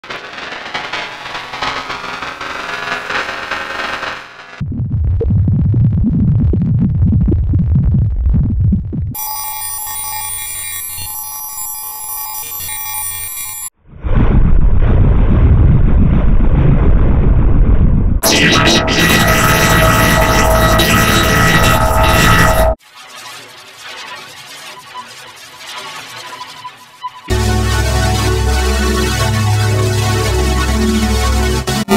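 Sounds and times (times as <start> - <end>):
heavily distorted processed music: 18.2 - 22.8, 26.7 - 31.9.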